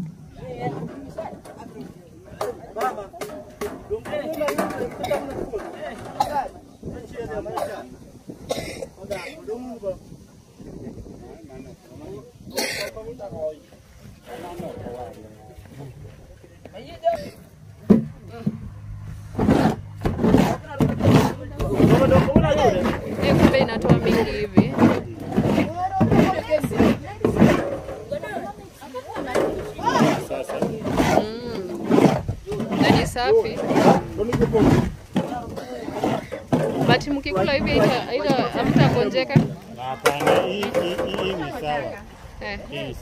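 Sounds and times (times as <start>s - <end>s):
people talking in background: 0.0s - 43.0s.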